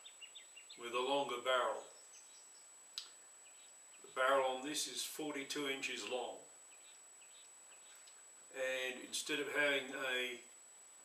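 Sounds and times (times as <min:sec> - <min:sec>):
faint bird chirps: 0:00.0 - 0:04.3, 0:06.6 - 0:08.6.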